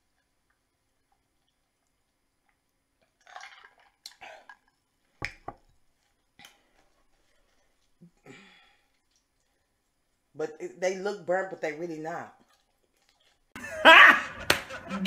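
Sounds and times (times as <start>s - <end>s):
mouth and handling noises: 0.1s - 10.2s, 12.3s - 13.6s
breaths and swallows: 2.5s - 5.2s.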